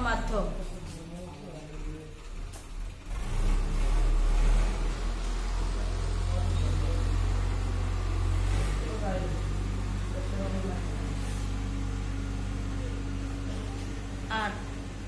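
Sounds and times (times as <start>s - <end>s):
engine rumble: 0.0s - 15.0s.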